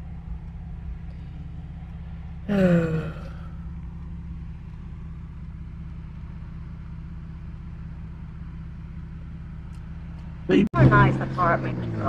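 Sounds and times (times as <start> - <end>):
car engine hum: 0.0 - 12.0
road noise inside car: 0.0 - 12.0.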